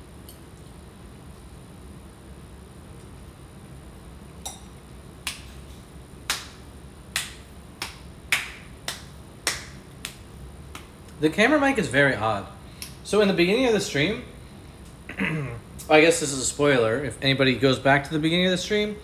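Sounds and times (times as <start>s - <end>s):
low room hum: 0.0s - 19.0s
sharp hand claps: 5.2s - 5.5s, 6.3s - 10.9s.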